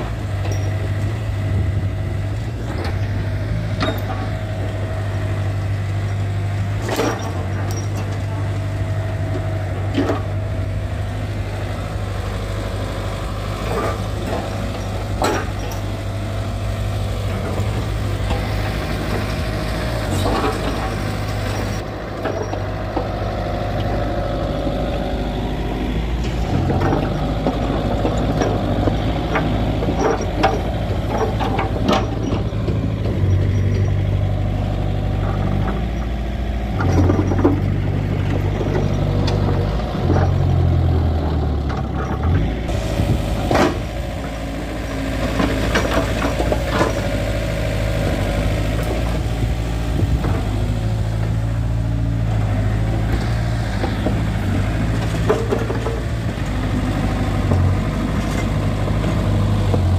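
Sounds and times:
mini excavator running: 0.0s - 59.9s
metal clanks and knocks: 2.6s - 4.5s, 26.2s - 34.0s, 36.8s - 40.6s.

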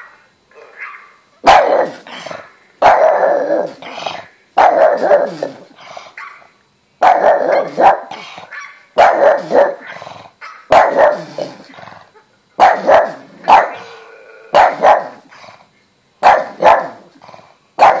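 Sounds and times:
dog barking: 0.0s - 2.0s, 2.8s - 3.4s, 4.6s - 5.4s, 6.2s - 11.4s, 12.6s - 15.2s, 16.2s - 17.0s, 17.8s - 18.0s.

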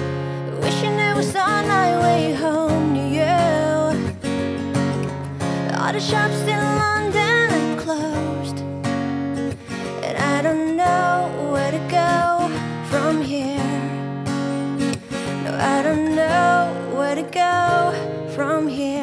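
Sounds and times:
woman singing: 0.0s - 8.9s, 9.5s - 14.2s, 15.1s - 19.0s
strummed acoustic guitar: 0.0s - 19.0s.

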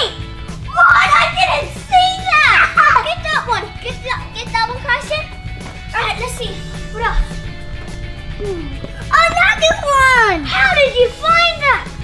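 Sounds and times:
children calling out: 0.0s - 4.0s
background music: 0.0s - 12.0s.

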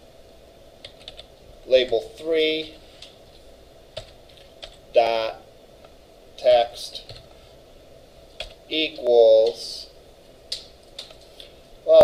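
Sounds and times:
computer keyboard keystrokes: 0.8s - 1.3s, 10.5s - 11.2s.

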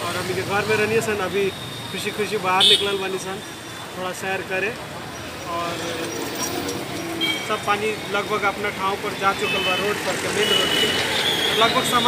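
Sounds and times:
motorcycles passing: 0.0s - 12.0s
vehicle horn: 2.6s - 3.0s
people talking: 7.5s - 10.8s, 11.6s - 12.0s.

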